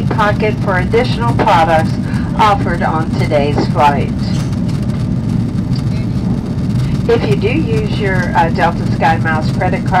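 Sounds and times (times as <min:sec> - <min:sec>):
jet engines roaring in cabin: 0:00.0 - 0:10.0.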